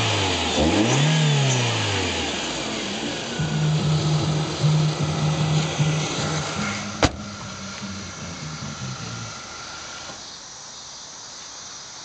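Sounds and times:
car engine running: 0.0 - 10.4.

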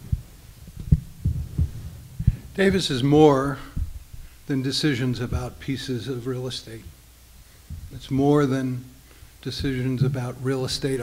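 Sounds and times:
microphone handling thumps: 0.0 - 4.4, 5.2 - 5.6, 7.6 - 8.5, 9.5 - 11.0.

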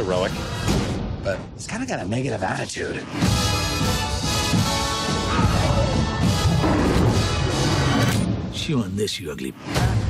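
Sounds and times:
trailer music: 0.0 - 10.0.

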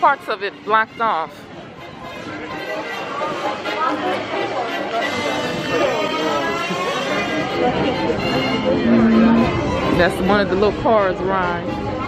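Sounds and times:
background music: 0.0 - 12.0
people talking indistinctly: 0.0 - 12.0.

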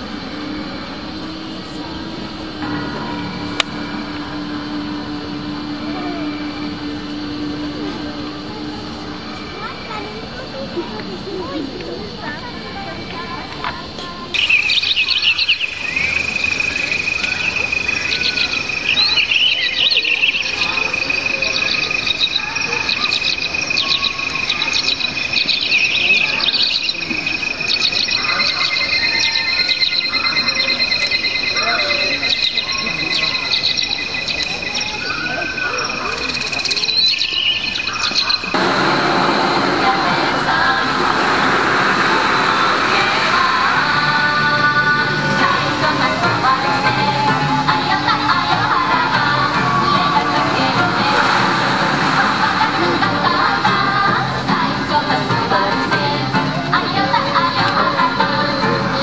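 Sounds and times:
high whistling tone: 0.0 - 10.5, 14.4 - 54.0
dense wash of sound: 0.0 - 12.9, 38.5 - 59.0
high steady insect trill: 0.0 - 38.6, 42.6 - 51.4
recorded birdsong over loudspeakers: 0.0 - 59.0.

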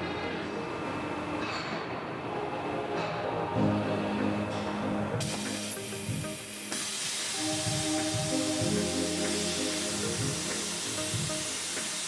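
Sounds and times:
plasma cutting machine running: 5.2 - 12.0.

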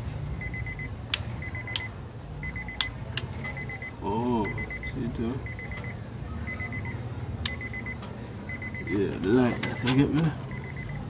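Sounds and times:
car warning chime beeping: 0.4 - 11.0.

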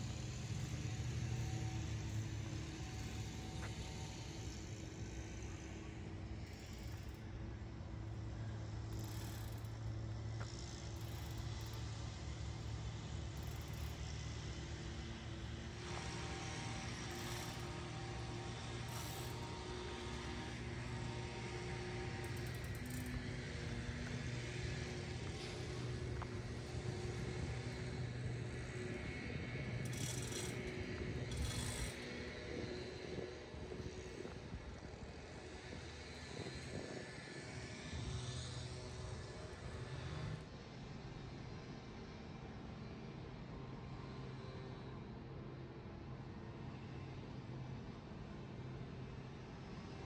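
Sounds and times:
low engine drone: 0.0 - 42.5.

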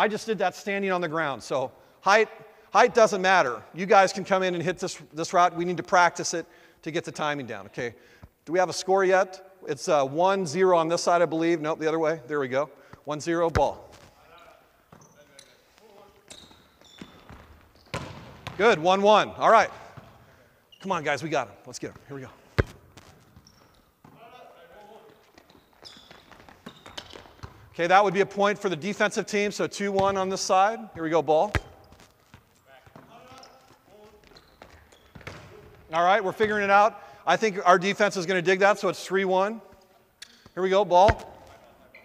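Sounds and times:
volleyball contacts: 12.8 - 28.4, 29.7 - 37.3, 39.5 - 42.0
loud volleyball spike: 17.3 - 18.6, 22.6 - 23.4, 31.5 - 32.1, 40.2 - 41.6
hands hitting volleyball: 22.6 - 23.4, 39.7 - 41.6.

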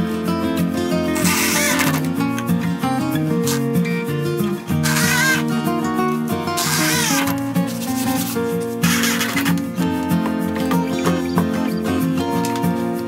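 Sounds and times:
instrumental music: 0.0 - 13.0
cordless drill driving screws: 1.2 - 2.1, 4.8 - 5.5, 6.6 - 7.4, 8.8 - 9.6.

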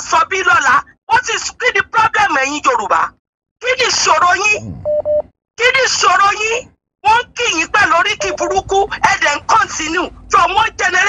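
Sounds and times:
person speaking: 3.7 - 5.0, 5.7 - 11.0
short electronic beeps: 4.6 - 5.2, 8.2 - 8.7.

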